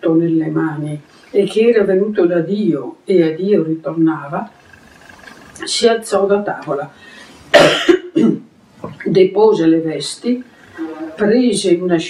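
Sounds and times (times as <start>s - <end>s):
woman coughing: 7.5s - 8.5s.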